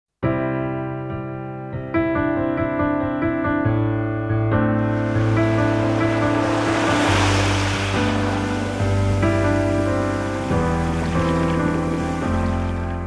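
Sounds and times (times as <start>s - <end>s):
soft music with sustained chords: 4.8s - 13.0s
wave breaking on sand: 4.8s - 13.0s.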